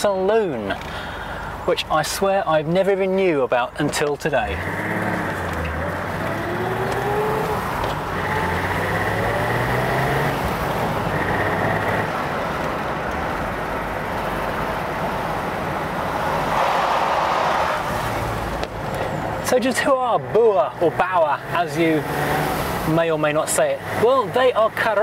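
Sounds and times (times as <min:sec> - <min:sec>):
road noise: 0:00.0 - 0:25.0
car engine pulling: 0:03.8 - 0:25.0.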